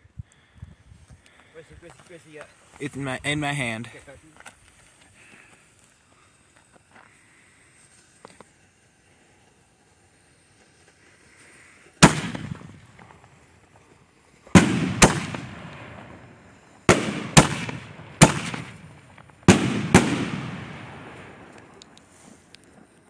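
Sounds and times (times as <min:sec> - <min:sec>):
firework shells booming: 0:12.0 - 0:13.4, 0:14.5 - 0:22.0.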